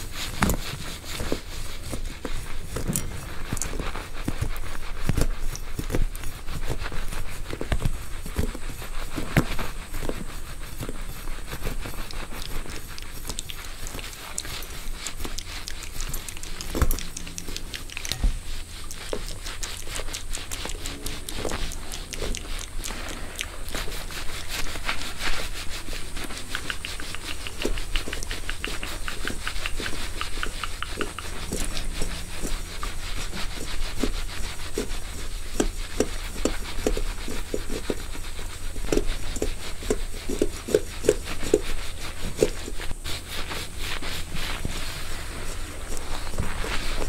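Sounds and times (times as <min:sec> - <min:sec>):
scratching through wig hair: 0:00.0 - 0:47.0.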